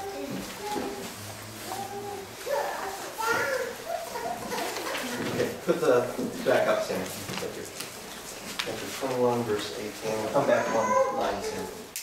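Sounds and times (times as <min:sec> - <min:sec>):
person talking: 0:08.7 - 0:11.8.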